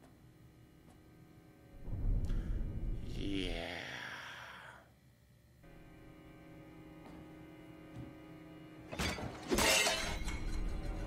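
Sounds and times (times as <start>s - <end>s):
tense music drone: 1.5s - 4.9s, 5.6s - 8.9s
sharp hit: 1.8s - 3.7s
glass shattering: 8.9s - 10.5s.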